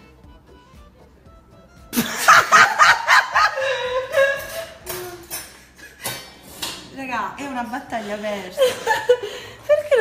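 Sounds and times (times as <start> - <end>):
woman laughing hard: 1.9 - 5.1, 8.6 - 10.0.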